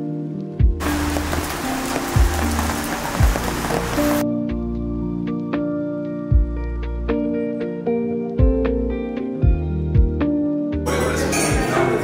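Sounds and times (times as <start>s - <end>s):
soft background music: 0.0s - 12.0s
rain hissing: 0.8s - 4.2s.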